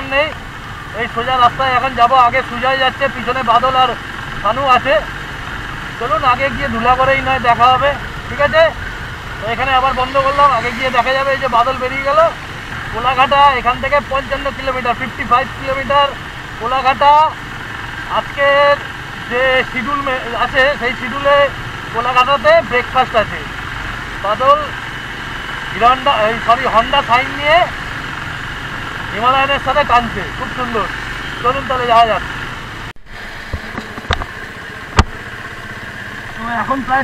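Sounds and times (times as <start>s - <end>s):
motorcycle engine running: 0.0s - 37.0s
road noise: 0.0s - 37.0s
person talking: 6.0s - 8.8s, 9.4s - 17.4s.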